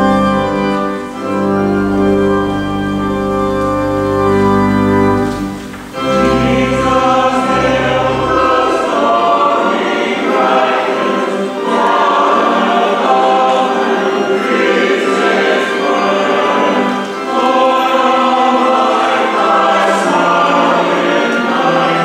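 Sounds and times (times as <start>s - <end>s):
low sustained accompaniment notes: 0.0s - 22.0s
mixed choir singing: 5.2s - 22.0s.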